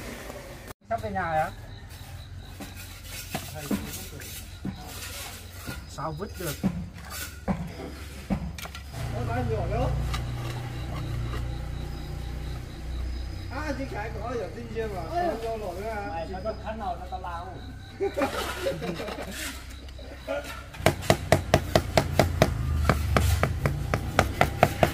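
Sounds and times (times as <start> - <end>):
trowel scraping and tapping mortar: 2.5 - 8.9, 19.0 - 24.9.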